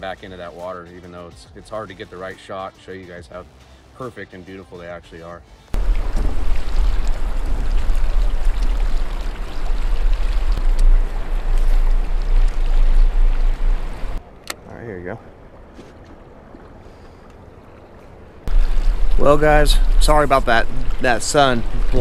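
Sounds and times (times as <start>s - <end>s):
wind buffeting microphone: 5.8s - 14.2s
water rushing past boat hull: 5.8s - 14.3s, 15.3s - 22.0s.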